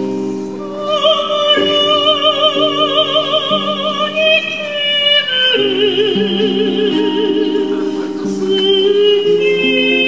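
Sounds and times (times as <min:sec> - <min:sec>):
woman singing with vibrato: 0:00.0 - 0:10.0.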